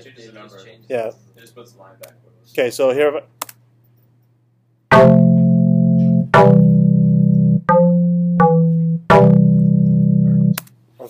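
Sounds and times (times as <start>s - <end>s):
loud sustained synth chords: 4.9s - 10.6s.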